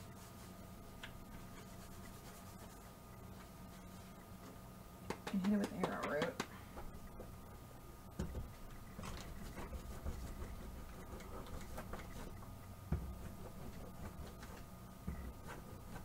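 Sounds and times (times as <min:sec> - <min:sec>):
faint steady hum: 0:00.0 - 0:16.0
small taps: 0:05.0 - 0:06.9.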